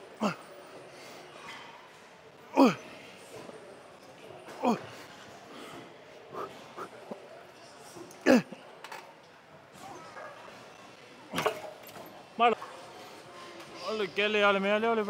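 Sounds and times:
man grunting and exhaling: 2.5 - 2.9.

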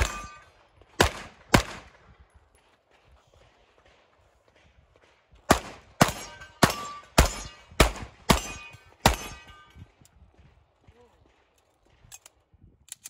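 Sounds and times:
steel targets ringing: 0.0 - 0.6, 6.0 - 10.0
handgun shots: 5.5 - 9.6.

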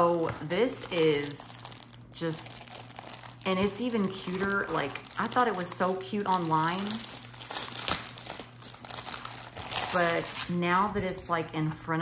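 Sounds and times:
plastic sleeve crinkling: 0.0 - 11.4.

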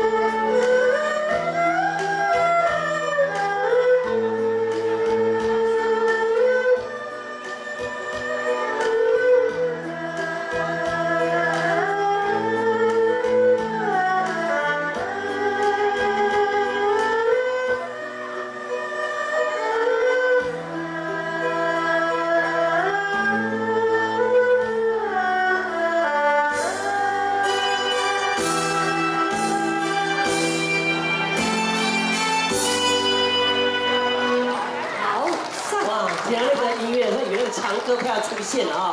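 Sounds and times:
bowed fiddles playing melody: 0.0 - 35.2.

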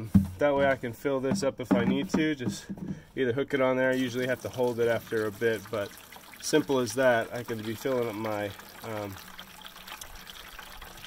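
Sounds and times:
water filling plastic watering can: 1.6 - 11.0.

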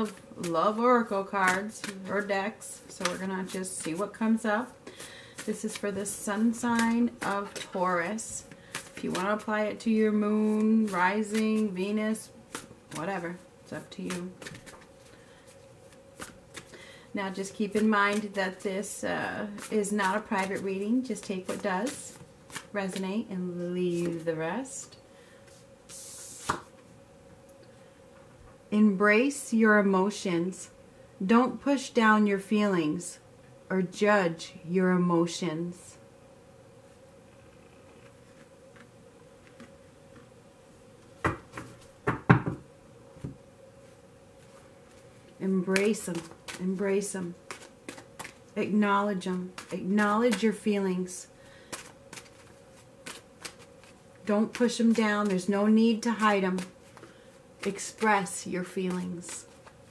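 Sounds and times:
cards rubbing hiss: 1.3 - 9.8, 10.4 - 13.2, 13.9 - 18.9, 25.4 - 26.8, 51.5 - 59.9
playing cards snapping: 47.5 - 48.4, 51.7 - 55.4.

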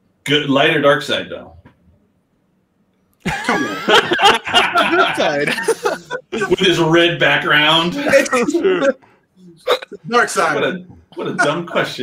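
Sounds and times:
men laughing: 3.2 - 7.0, 7.7 - 9.0, 11.2 - 11.7.

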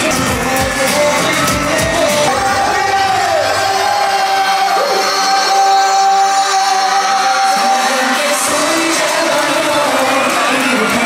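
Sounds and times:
live pop band: 0.0 - 11.0
person singing: 0.0 - 11.0
stadium crowd: 0.0 - 11.0.

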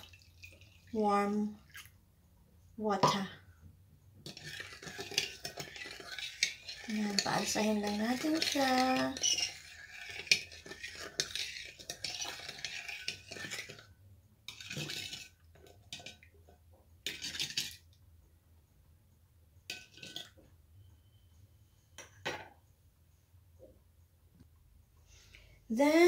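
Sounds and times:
metal spoon scraping ceramic bowl: 2.9 - 3.5, 4.2 - 16.3, 17.0 - 17.8, 19.6 - 21.2.

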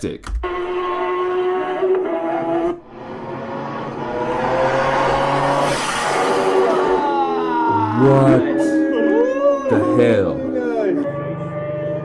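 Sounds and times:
racing motorcycle passing fast: 2.3 - 8.3.

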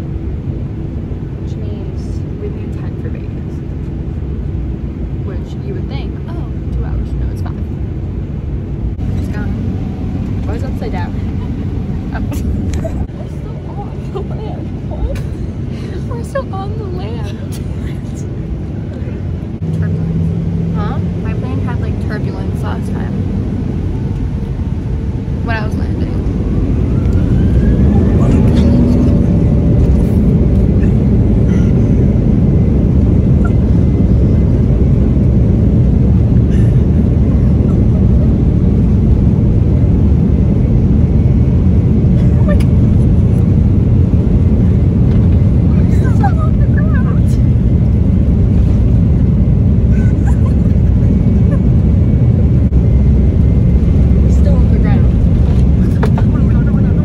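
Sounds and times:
engine whine: 0.0 - 57.0
jet engine rumble in cabin: 0.0 - 57.0
faint voices and laughter: 11.2 - 19.3, 42.0 - 43.5, 45.6 - 47.5, 49.8 - 52.2, 55.6 - 57.0.

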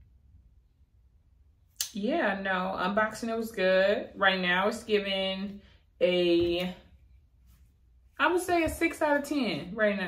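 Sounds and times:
woman speaking: 1.8 - 6.9, 8.2 - 10.0.

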